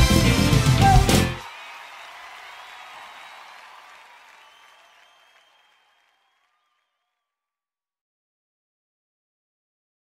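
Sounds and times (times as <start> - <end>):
faint crowd applause: 0.0 - 7.2.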